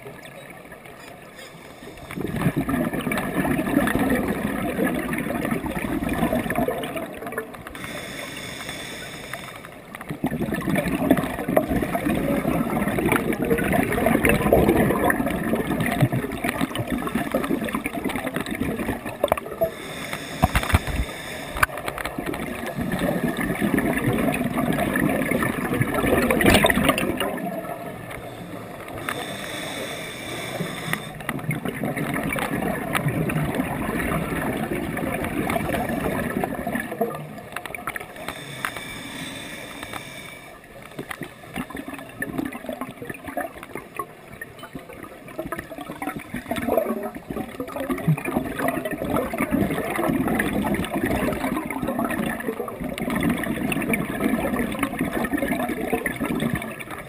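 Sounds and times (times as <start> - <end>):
regulator inhale hiss: 1.5 - 2.2, 7.8 - 9.8, 19.6 - 21.8, 28.3 - 31.3, 38.2 - 41.6
bubbling exhale underwater: 2.1 - 7.9, 10.1 - 38.6, 44.9 - 57.0.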